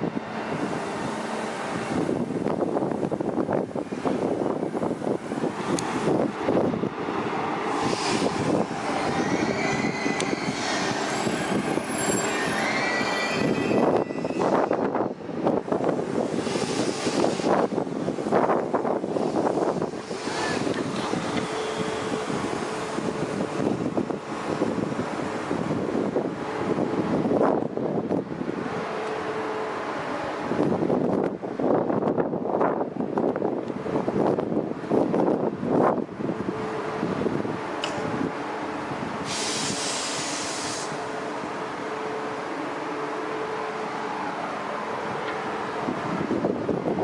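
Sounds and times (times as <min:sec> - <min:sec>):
wind on microphone: 0:00.0 - 0:28.9, 0:30.4 - 0:41.0, 0:45.0 - 0:47.0
electric trains running: 0:00.0 - 0:47.0
bright hiss: 0:39.3 - 0:41.0.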